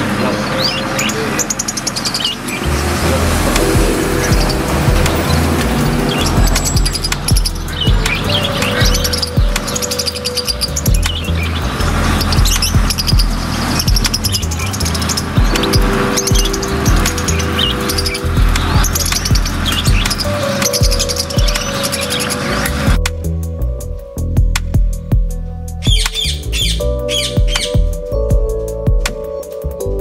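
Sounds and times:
birds chirping: 0.0s - 30.0s
background music with bass line: 2.2s - 30.0s.

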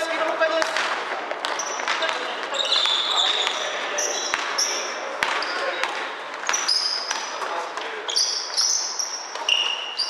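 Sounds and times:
players' voices: 0.0s - 10.0s
basketball bouncing: 0.5s - 7.9s
shoes squeaking on wooden floor: 1.3s - 10.0s.

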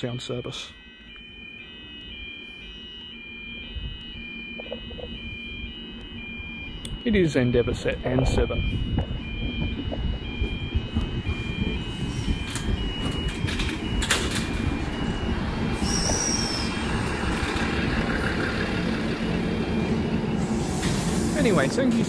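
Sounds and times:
two-tone electronic warning signal: 0.0s - 22.0s
train engine and wheel rumble: 3.9s - 22.0s
brake squeal: 15.7s - 18.5s.

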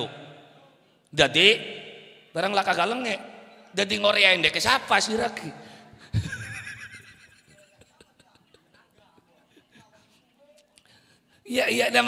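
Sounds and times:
man laughing: 6.1s - 10.1s.

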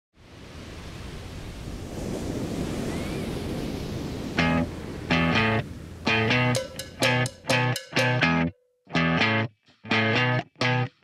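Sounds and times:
ocean waves washing onto beach: 0.2s - 7.2s.

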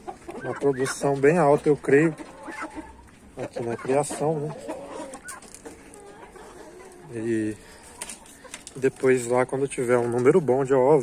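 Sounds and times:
chickens clucking softly: 0.0s - 11.0s.

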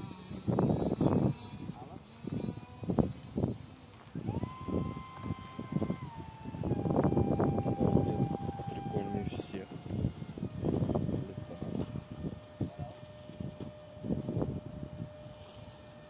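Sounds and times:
electric ducted fan whining: 0.0s - 16.0s
bursts of low noise: 4.0s - 16.0s.

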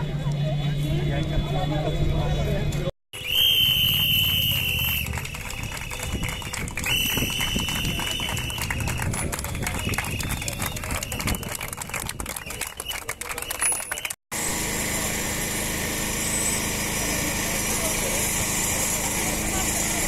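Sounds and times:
shrill whistle blasts: 3.2s - 11.6s
marching crowd: 3.2s - 14.2s.

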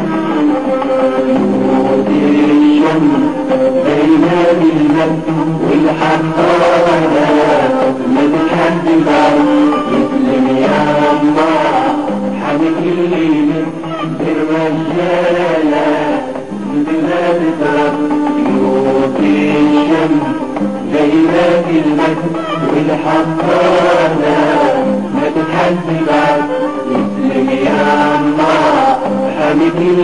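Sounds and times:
instrumental backing music: 0.0s - 30.0s
voices singing chant-like melody: 0.0s - 30.0s.

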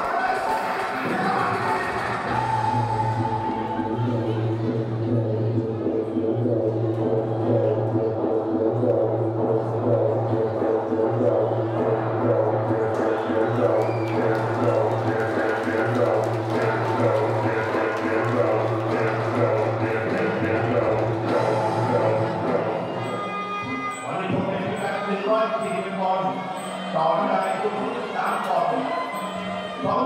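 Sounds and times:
reedy wind instrument melody: 2.3s - 30.0s.

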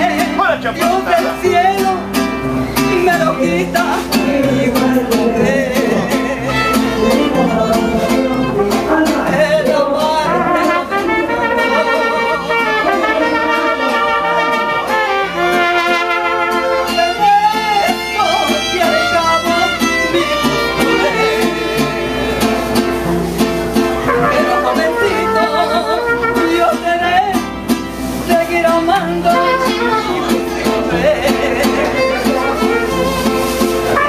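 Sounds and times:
plucked bass guitar: 0.0s - 34.0s
strummed guitar: 0.0s - 34.0s
violins playing melody: 10.9s - 22.8s, 31.8s - 34.0s.

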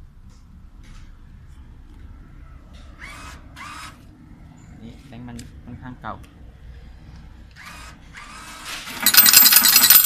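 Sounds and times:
coins clattering into metal tray: 8.9s - 10.0s.

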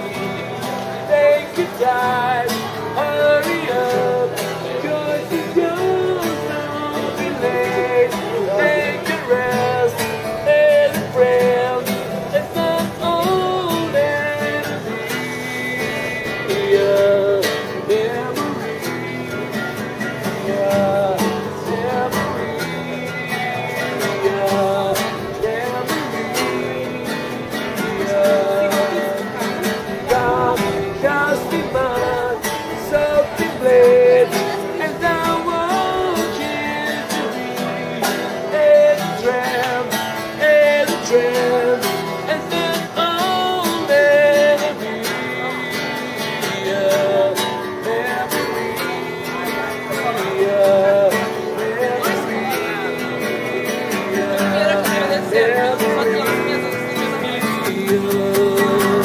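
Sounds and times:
guitar: 0.0s - 59.0s
person singing: 0.0s - 59.0s.

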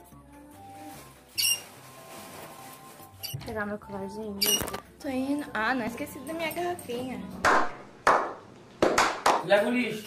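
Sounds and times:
faint background music: 0.0s - 8.1s, 9.1s - 10.0s
short high squeak: 1.4s - 1.7s.

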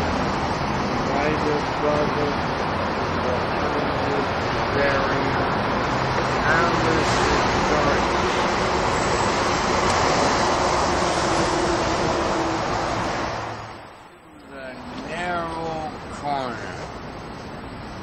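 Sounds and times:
road traffic roar: 0.0s - 18.0s
man talking: 1.1s - 2.4s, 3.2s - 5.6s, 6.4s - 8.2s, 14.3s - 16.9s.

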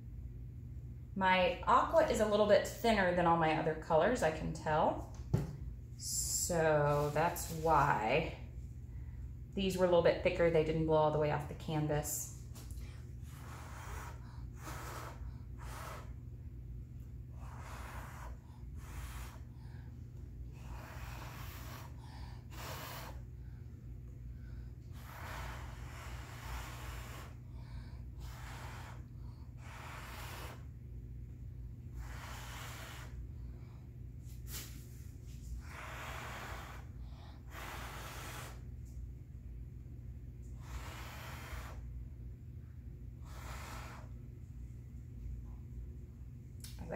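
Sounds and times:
steady low hum: 0.0s - 46.9s
person blowing puffs of breath: 13.3s - 16.2s, 20.6s - 23.3s, 35.6s - 38.7s, 40.6s - 41.9s.

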